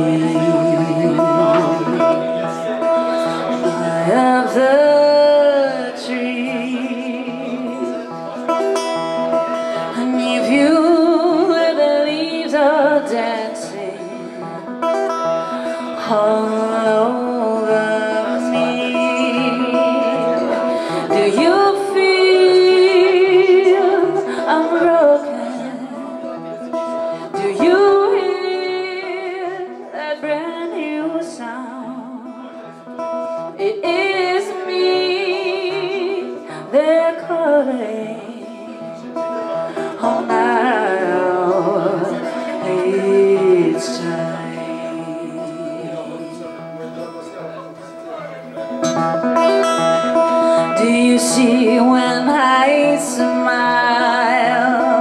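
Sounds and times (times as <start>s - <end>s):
woman singing: 0.0s - 26.5s, 27.2s - 32.5s, 33.5s - 46.5s, 49.6s - 55.0s
acoustic guitar: 0.0s - 55.0s.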